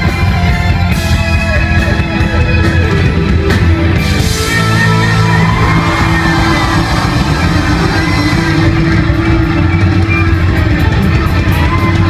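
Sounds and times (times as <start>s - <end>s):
bass guitar: 0.0s - 12.0s
drum kit: 0.0s - 12.0s.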